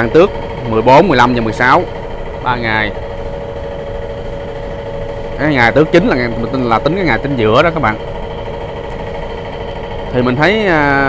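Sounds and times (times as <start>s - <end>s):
motor humming: 0.0s - 11.0s.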